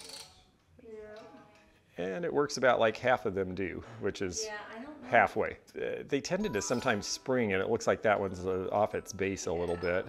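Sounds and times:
music box spring ratchet clicking: 0.0s - 0.5s.

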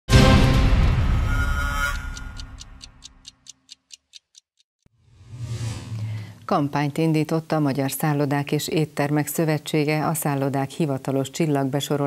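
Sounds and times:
theme music: 0.1s - 3.2s
clock-like ticking: 1.8s - 4.7s.

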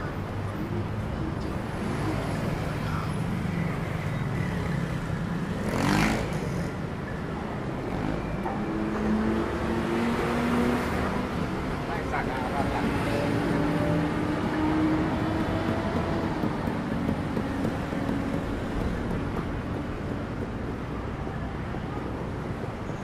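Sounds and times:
traffic rumble: 0.0s - 23.0s.

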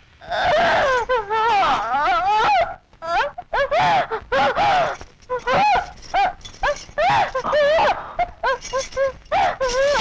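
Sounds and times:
woman wailing and sobbing: 0.3s - 10.0s.

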